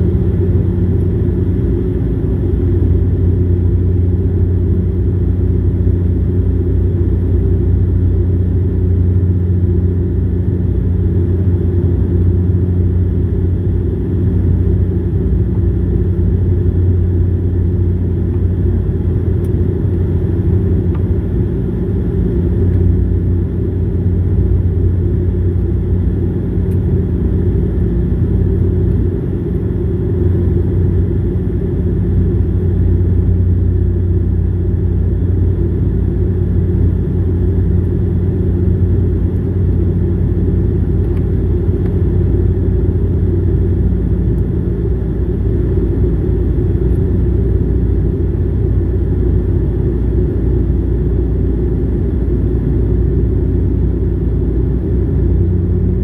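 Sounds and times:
turboprop engine drone: 0:00.0 - 0:56.0.

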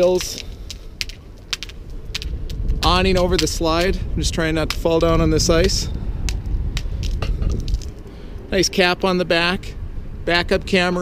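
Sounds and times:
footsteps crunching on ice: 0:00.0 - 0:08.1
steady low rumble: 0:00.0 - 0:11.0.

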